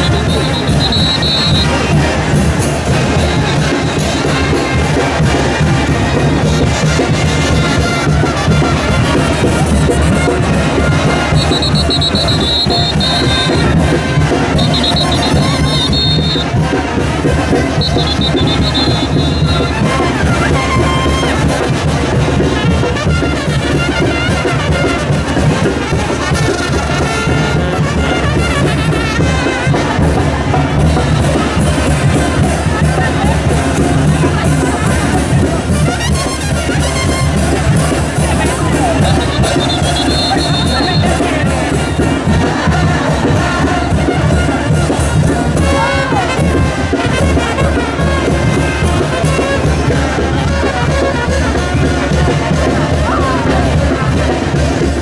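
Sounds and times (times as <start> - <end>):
brass band playing: 0.0 - 55.0
drums: 0.0 - 55.0.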